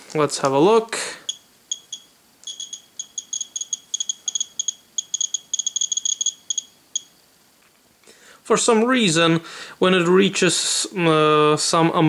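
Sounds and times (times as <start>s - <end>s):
geiger counter clicking: 1.3s - 7.1s.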